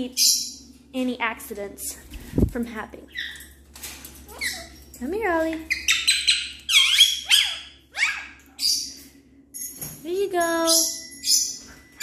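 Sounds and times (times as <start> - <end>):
parrots squawking: 4.3 - 4.8, 5.6 - 9.0.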